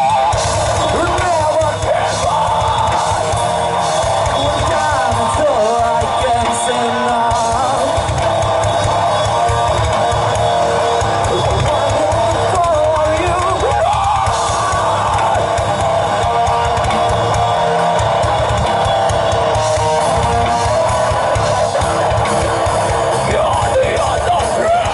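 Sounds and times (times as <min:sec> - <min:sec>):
live metal band playing: 0:00.0 - 0:24.9.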